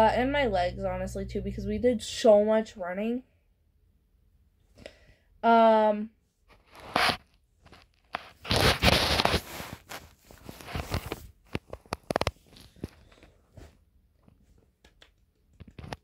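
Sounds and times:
fabric rubbing against microphone: 0:06.5 - 0:07.3, 0:08.1 - 0:12.6.

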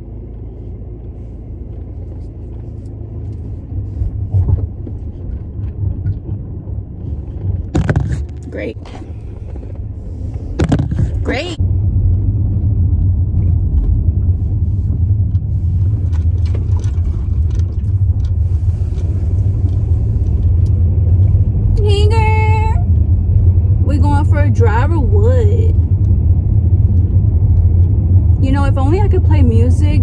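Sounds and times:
car engine rumble and road noise: 0:00.0 - 0:30.0.

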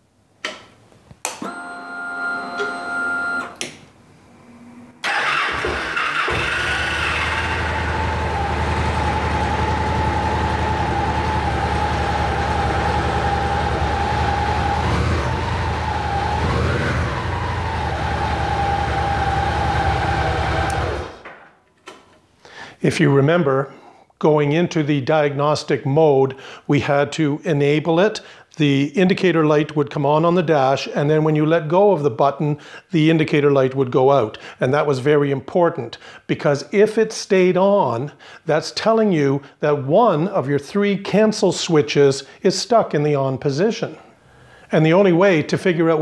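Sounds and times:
motorcycle engine idling: 0:06.2 - 0:16.5.

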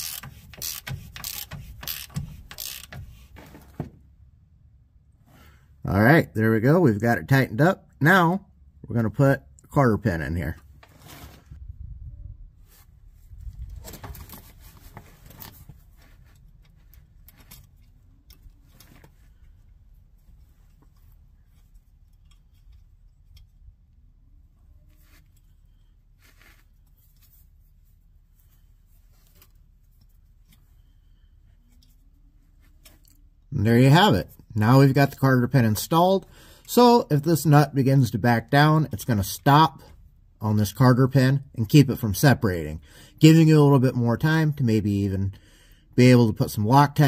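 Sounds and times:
small metallic clicks and scrapes: 0:00.0 - 0:03.5, 0:20.3 - 0:23.7
rustling: 0:10.8 - 0:11.6, 0:12.6 - 0:23.7, 0:24.5 - 0:33.4.

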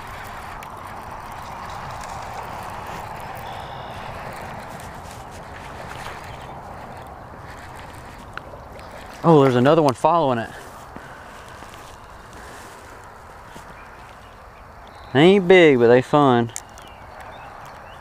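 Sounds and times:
fishing reel whirring: 0:00.0 - 0:14.4
faint clicks: 0:16.5 - 0:17.9.

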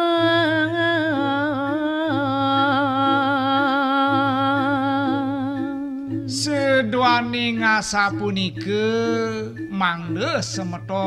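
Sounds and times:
person singing a long wavering note: 0:00.0 - 0:09.9.

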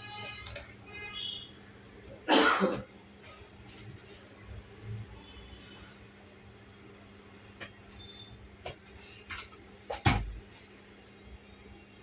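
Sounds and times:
person coughing: 0:02.2 - 0:02.9.

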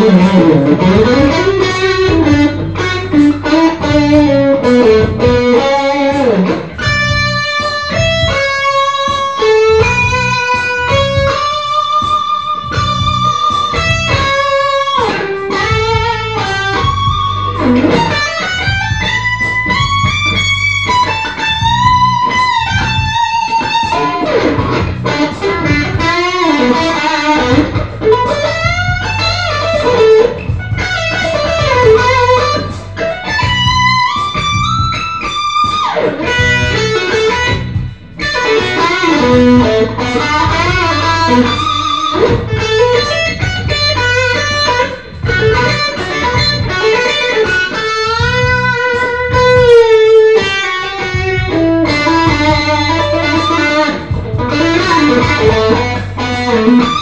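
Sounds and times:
electric guitar lead: 0:00.0 - 0:57.0.

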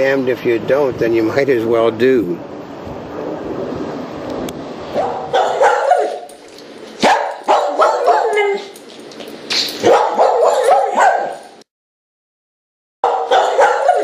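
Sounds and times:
dog barking: 0:04.9 - 0:06.4, 0:07.0 - 0:08.8, 0:09.8 - 0:11.6, 0:13.0 - 0:14.0.

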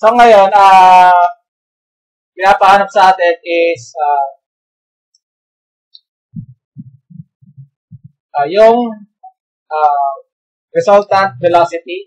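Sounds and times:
soft low thumps: 0:06.3 - 0:08.2.

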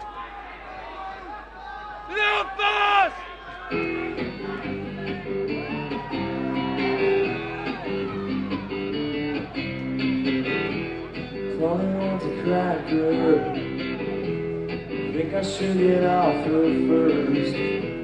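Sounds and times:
live guitar playing chords: 0:03.7 - 0:18.0.

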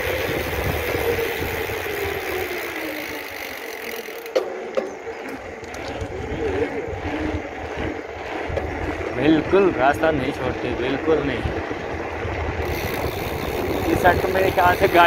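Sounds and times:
wind rushing over microphone: 0:00.0 - 0:02.8, 0:05.5 - 0:15.0
bike tyres rolling on road: 0:00.0 - 0:15.0
voices: 0:00.9 - 0:11.6, 0:13.7 - 0:15.0.

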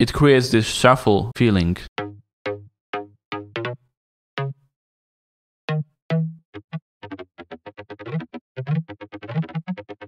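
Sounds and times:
clicky synth bass notes: 0:02.0 - 0:03.8, 0:04.4 - 0:04.6, 0:05.7 - 0:10.0.

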